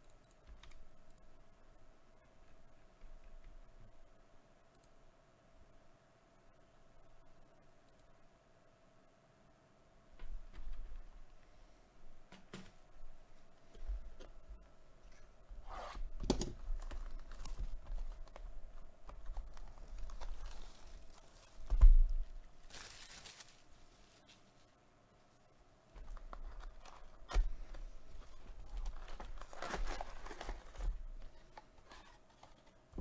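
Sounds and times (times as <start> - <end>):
cardboard and foil packs handled: 16.5 - 24.5, 26.0 - 32.8
plastic wrap tearing and crinkling: 16.6 - 18.4, 19.1 - 21.8, 22.6 - 24.0, 28.4 - 32.4.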